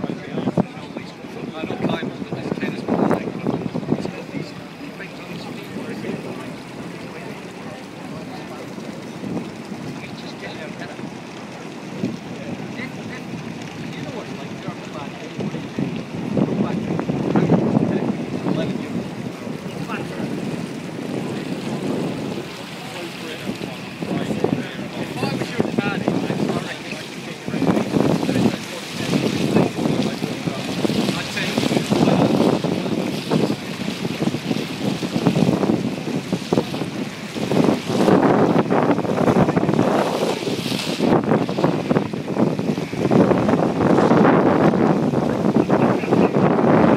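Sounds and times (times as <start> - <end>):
sea water splashing along hull: 0.0 - 46.9
wind buffeting microphone: 0.0 - 46.9.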